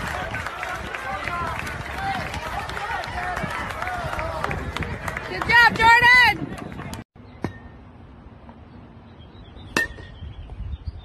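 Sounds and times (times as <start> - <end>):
baseball bat hitting ball: 9.8 - 10.2.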